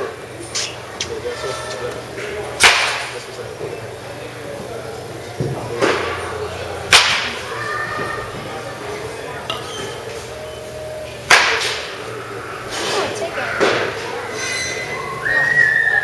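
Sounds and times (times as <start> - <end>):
bat cracking ball: 2.6 - 3.1, 6.9 - 7.4.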